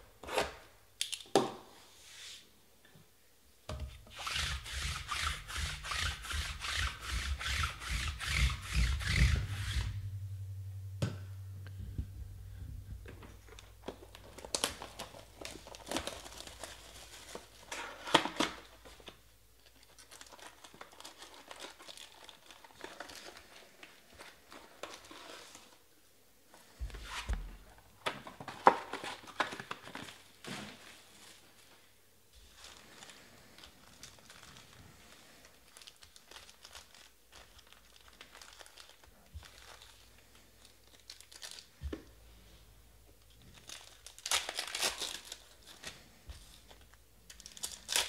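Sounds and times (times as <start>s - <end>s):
foil packs crinkling: 13.5s - 25.7s, 32.5s - 41.8s, 43.4s - 48.0s.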